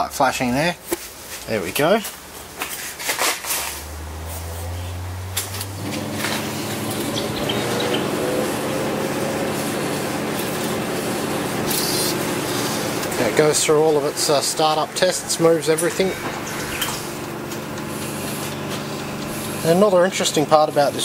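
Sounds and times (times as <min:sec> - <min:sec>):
copier motors whirring: 0:03.6 - 0:21.0
low hum: 0:11.5 - 0:19.5.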